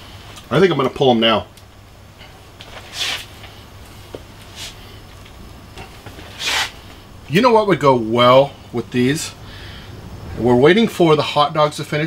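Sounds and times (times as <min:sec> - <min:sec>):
low steady hum: 0:00.0 - 0:12.0
light tick: 0:01.5 - 0:01.7
soft hissing swishes: 0:02.1 - 0:07.2.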